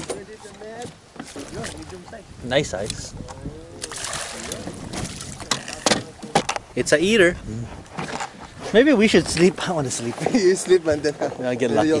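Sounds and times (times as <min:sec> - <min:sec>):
fish splashing at the surface: 0:03.8 - 0:05.8.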